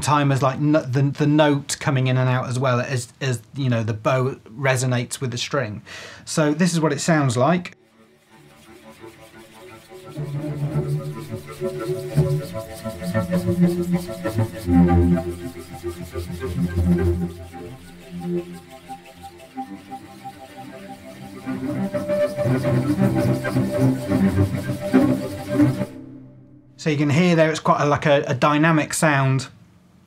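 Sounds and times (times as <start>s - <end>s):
bow swishing across strings: 8.0s - 26.7s
cello bowing low notes: 8.2s - 27.5s.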